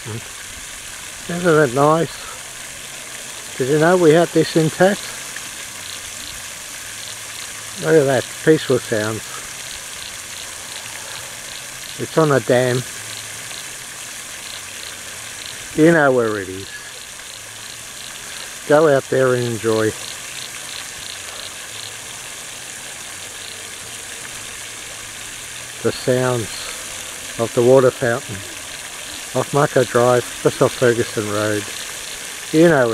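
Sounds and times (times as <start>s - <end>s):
fountain water splashing: 0.0s - 32.9s.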